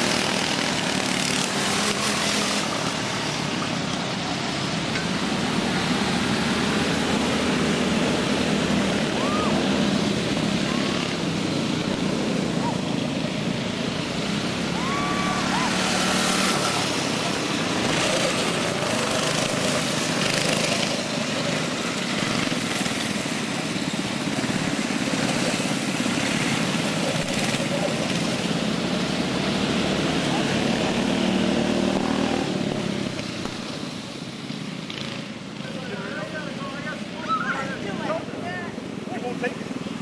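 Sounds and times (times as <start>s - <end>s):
people talking: 35.6s - 39.8s.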